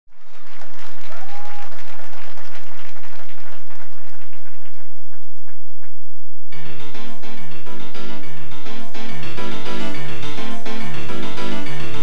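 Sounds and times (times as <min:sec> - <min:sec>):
audience applause: 0:00.1 - 0:05.6.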